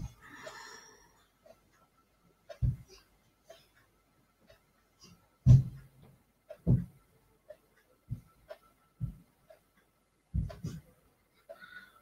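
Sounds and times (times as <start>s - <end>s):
faint breathy ticks: 0.0s - 5.9s, 11.3s - 12.0s.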